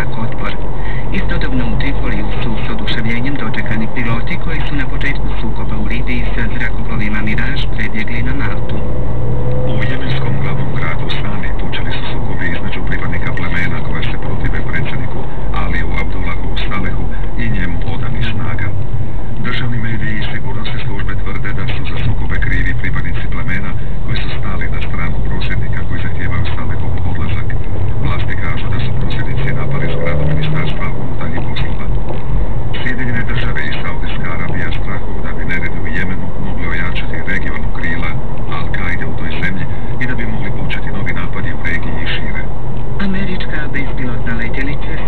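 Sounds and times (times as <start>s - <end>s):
car engine and road noise: 0.0s - 45.0s
muffled radio news broadcast: 0.0s - 45.0s.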